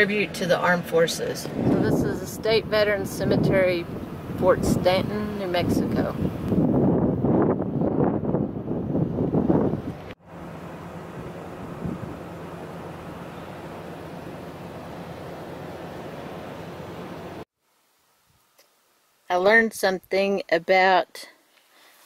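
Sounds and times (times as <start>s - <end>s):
wind buffeting microphone: 1.2s - 10.2s, 11.7s - 12.2s.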